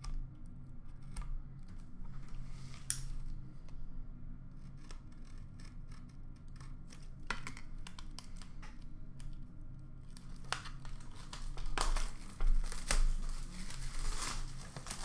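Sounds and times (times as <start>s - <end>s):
steady low hum: 0.0s - 15.0s
blade scraping cardboard: 4.6s - 7.2s.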